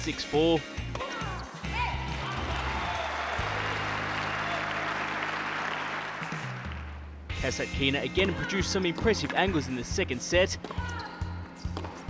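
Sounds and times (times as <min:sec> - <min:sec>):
backing music: 0:00.0 - 0:10.7
crowd applauding: 0:02.0 - 0:07.1.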